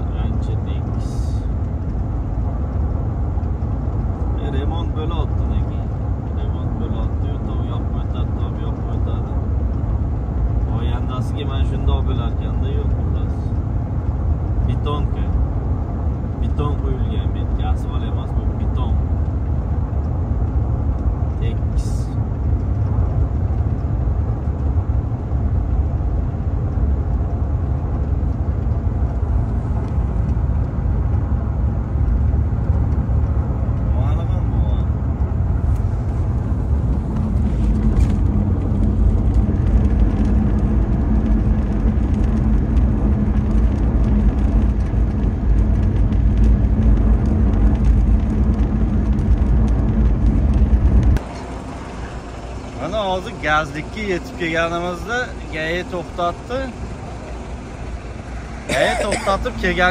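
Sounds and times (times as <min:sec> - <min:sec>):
road and engine rumble in car: 0:00.0 - 0:59.9.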